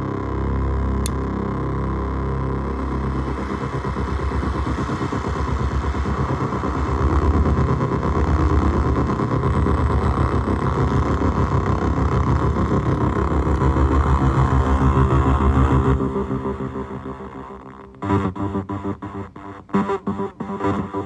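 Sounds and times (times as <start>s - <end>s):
gritty synthesizer drone and buzz: 0.0s - 21.0s.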